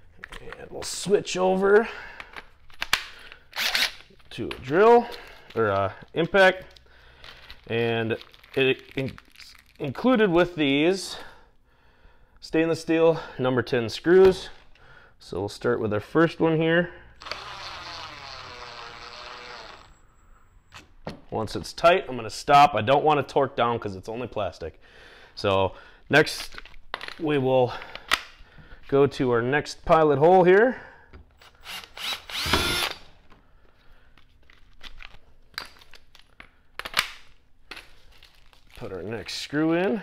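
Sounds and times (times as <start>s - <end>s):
cordless drill motor whirring: 17.2s - 20.0s, 31.4s - 33.0s.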